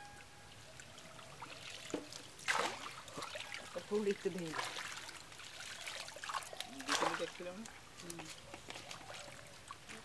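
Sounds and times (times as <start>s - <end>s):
water trickling and dripping: 0.0s - 10.0s
water splash: 1.4s - 7.8s.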